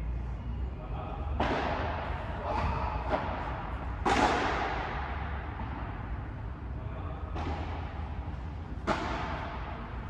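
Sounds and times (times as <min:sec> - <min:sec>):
racket striking ball: 0:01.4 - 0:05.3, 0:07.3 - 0:10.0.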